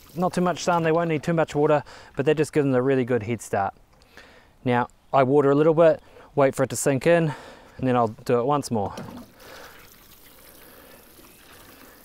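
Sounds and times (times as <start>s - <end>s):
water sprinkling onto soil: 0.0s - 1.1s, 9.3s - 12.0s.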